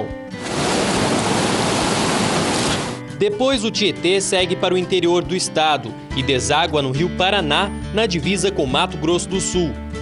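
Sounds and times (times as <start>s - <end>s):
river water rushing: 0.4s - 3.0s.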